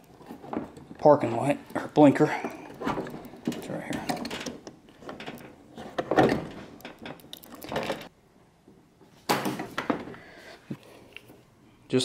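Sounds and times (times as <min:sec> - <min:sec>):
plastic parts knocking and rattling: 0:00.0 - 0:01.1, 0:01.7 - 0:08.1.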